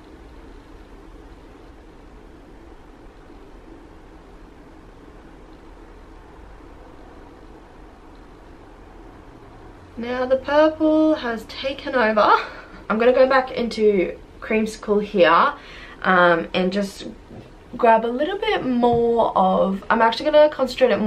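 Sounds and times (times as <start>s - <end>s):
faint background hiss: 0.0s - 21.0s
low hum: 0.0s - 21.0s.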